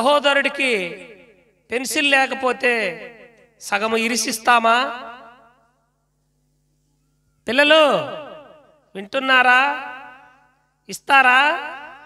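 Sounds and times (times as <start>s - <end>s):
man preaching through a microphone: 0.0s - 5.3s, 7.5s - 12.0s.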